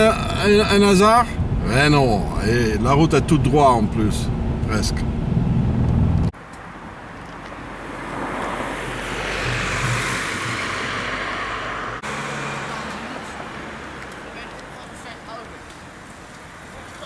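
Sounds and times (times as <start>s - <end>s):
car engine and road drone: 0.0s - 16.8s
car passing by: 7.0s - 17.0s.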